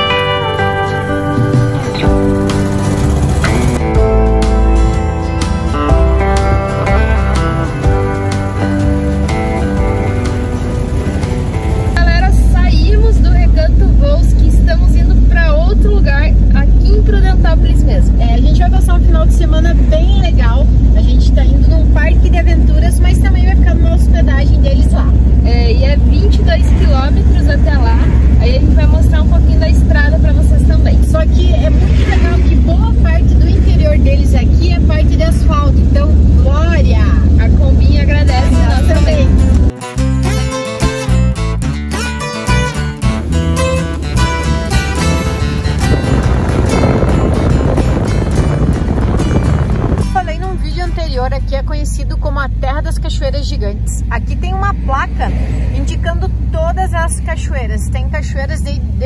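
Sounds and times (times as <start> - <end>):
guitar music: 0.0 - 54.8
van engine and road rumble: 0.0 - 59.0
voices: 8.4 - 39.7, 49.9 - 59.0.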